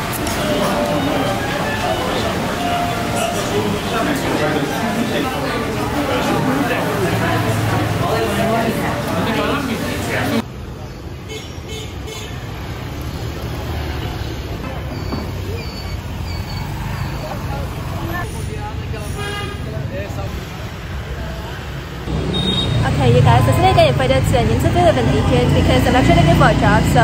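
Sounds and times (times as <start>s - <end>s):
passing motorbikes and cars: 0.0s - 11.4s, 12.0s - 19.0s, 19.7s - 27.0s
voices close by: 0.0s - 27.0s.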